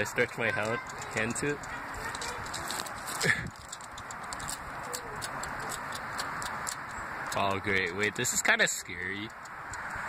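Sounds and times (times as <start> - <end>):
steady outdoor hiss: 0.0 - 10.0
person laughing: 3.1 - 3.6.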